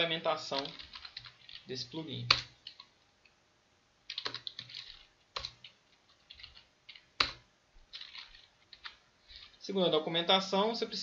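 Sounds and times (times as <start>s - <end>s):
typing on a keyboard: 0.6s - 1.7s, 4.1s - 9.6s.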